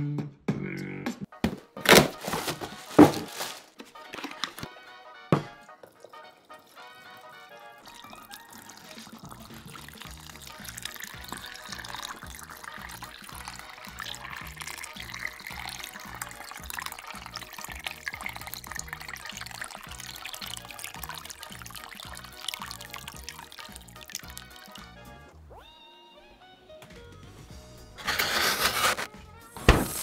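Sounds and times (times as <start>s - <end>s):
water pouring in thin stream: 5.5s - 25.1s
background music with steady beat: 10.4s - 25.4s, 29.0s - 30.0s.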